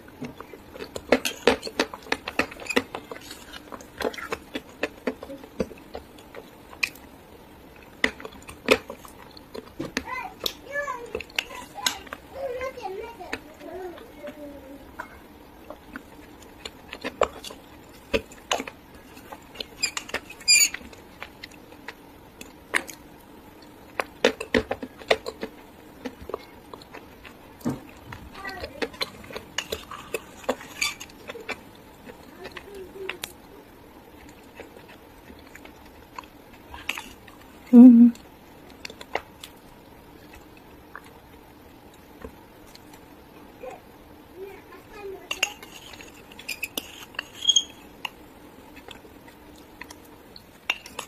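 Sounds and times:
high squeaky ring of spoon on glass: 19.8s - 20.8s, 46.5s - 47.8s.

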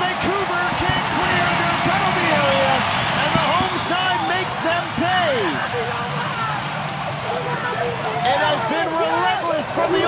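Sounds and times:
stadium crowd cheering and shouting: 0.0s - 10.0s.

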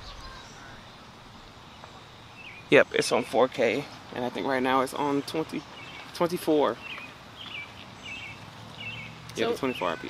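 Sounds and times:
outdoor background hum: 0.0s - 10.0s
small bird chirping: 0.0s - 10.0s.

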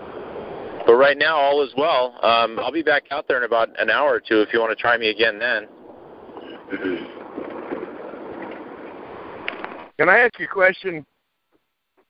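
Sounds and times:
vehicle road and wind noise: 0.0s - 10.7s.

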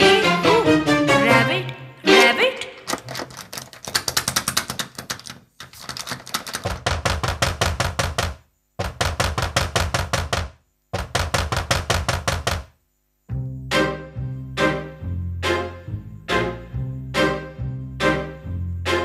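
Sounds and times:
rapid drumbeats in dance music: 6.6s - 12.7s.

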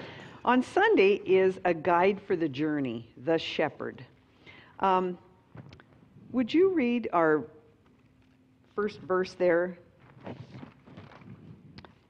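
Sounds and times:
paper rustling and handling: 10.0s - 12.0s.

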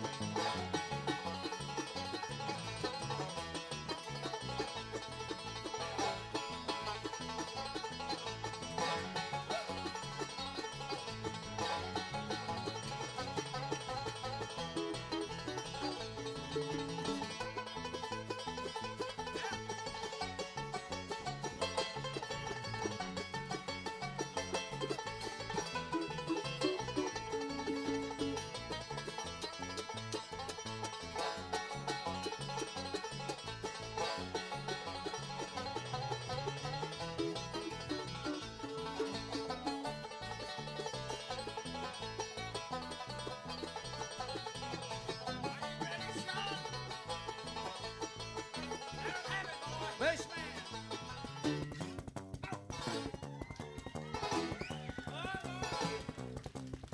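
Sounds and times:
banjo picked fast: 0.0s - 56.9s.

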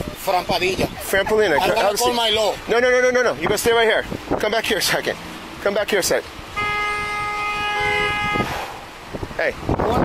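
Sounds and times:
vehicle horn honking: 6.5s - 8.6s.

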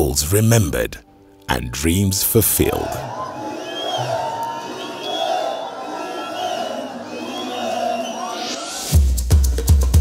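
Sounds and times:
crowd cheering and shouting: 2.4s - 9.0s.

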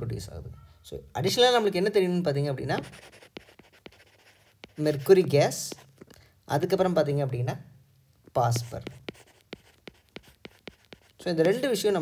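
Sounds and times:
stylus tapping on tablet: 8.2s - 12.0s.

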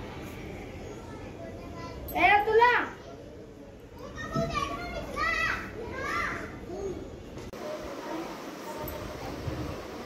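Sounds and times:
children calling out: 3.0s - 7.2s.

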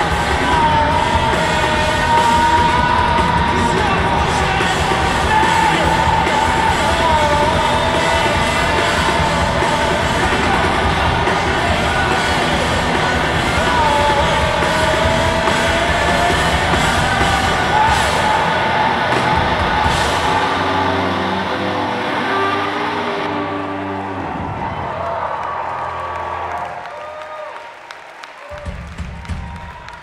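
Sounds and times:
person singing: 0.0s - 24.0s
live rock band playing: 0.0s - 24.3s.

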